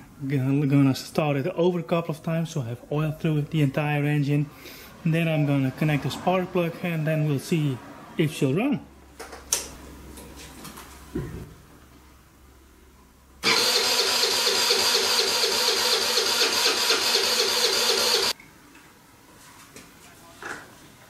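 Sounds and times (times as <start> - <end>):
engine cranking by electric starter: 13.4 - 18.4.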